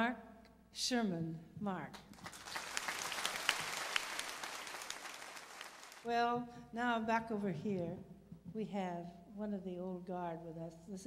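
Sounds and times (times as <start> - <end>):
audience applause: 2.2 - 6.1.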